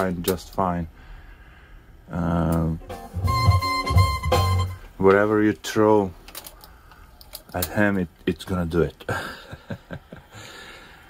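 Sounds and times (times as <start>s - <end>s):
pulsing bass line: 2.8s - 4.8s
held high note: 2.8s - 4.9s.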